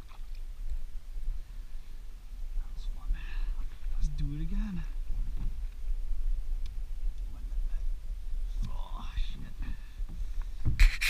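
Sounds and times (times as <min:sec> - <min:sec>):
paddle water sounds: 0:00.0 - 0:11.0
steady low rumble: 0:00.5 - 0:11.0.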